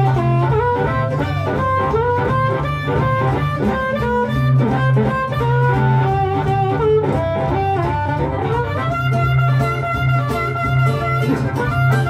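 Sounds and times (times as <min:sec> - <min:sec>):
blues harmonica solo: 0:00.0 - 0:12.0
rhythm guitar: 0:00.0 - 0:12.0.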